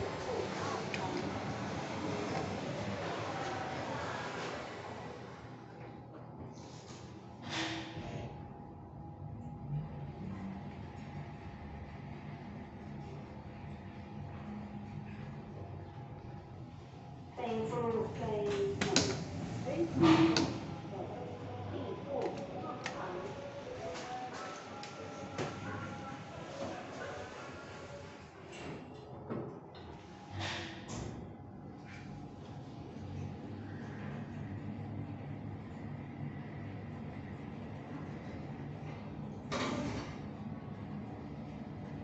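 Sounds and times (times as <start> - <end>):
lift doors sliding open: 0.0 - 5.6
elevator humming: 0.0 - 42.0.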